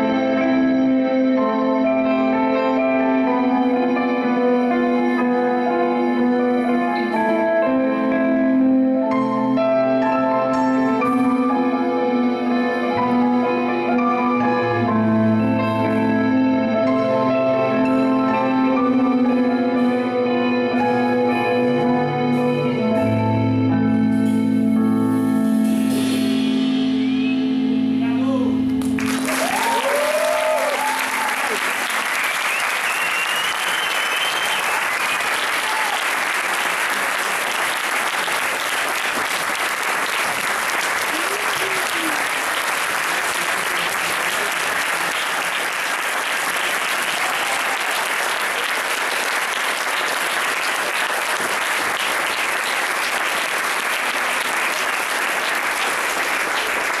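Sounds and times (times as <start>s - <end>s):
band playing: 0.0s - 57.0s
audience applauding: 28.8s - 57.0s
audience cheering: 29.0s - 57.0s.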